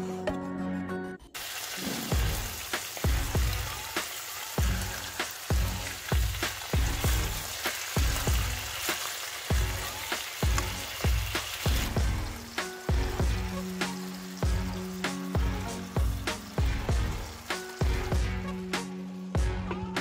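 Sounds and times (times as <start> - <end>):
background music with a beat: 0.0 - 1.3, 2.0 - 20.0
meat sizzling in a frying pan: 1.4 - 19.5.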